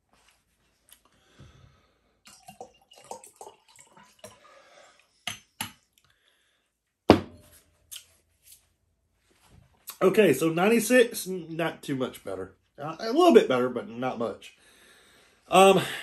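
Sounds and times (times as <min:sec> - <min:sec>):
liquid pouring into glass jar: 0:02.2 - 0:05.0.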